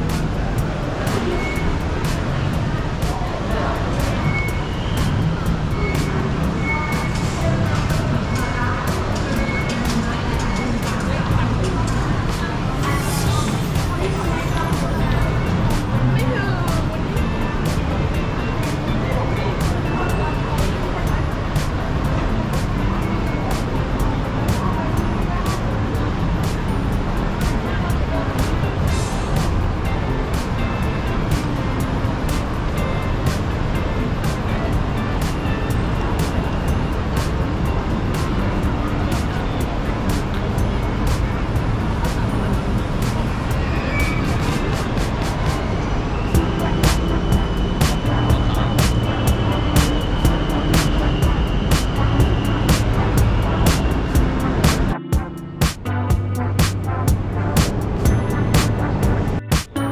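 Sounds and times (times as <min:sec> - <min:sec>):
crowd chatter: 0:00.0 - 0:59.9
music: 0:00.0 - 0:59.9
traffic: 0:00.0 - 0:59.9.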